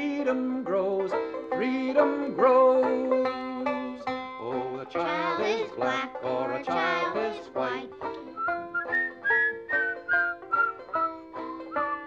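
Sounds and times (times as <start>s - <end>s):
banjo picking: 0.0s - 12.0s
person singing folk song: 0.0s - 12.0s.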